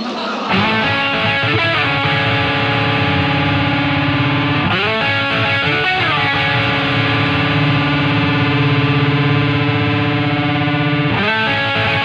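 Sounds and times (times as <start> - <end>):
distorted electric guitar chord: 0.5 - 12.0
punk rock band playing: 0.5 - 12.0.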